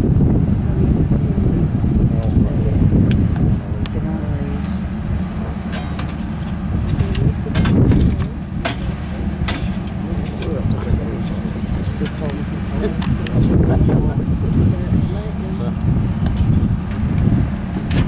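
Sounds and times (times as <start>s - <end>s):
wind buffeting microphone: 0.0s - 18.0s
people talking in background: 0.6s - 16.6s.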